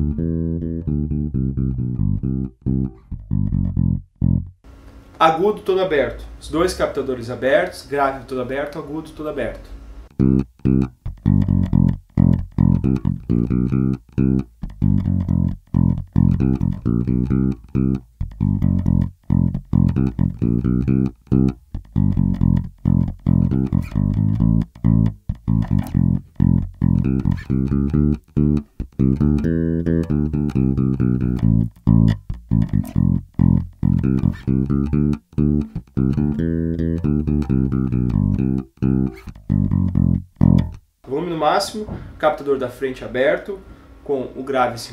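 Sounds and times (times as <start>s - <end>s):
electric bass groove: 0.0s - 5.1s, 9.7s - 41.0s.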